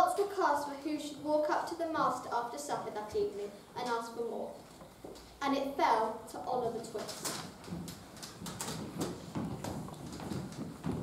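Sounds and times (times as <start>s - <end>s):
children's footsteps on hard floor: 4.5s - 5.4s, 6.5s - 11.0s.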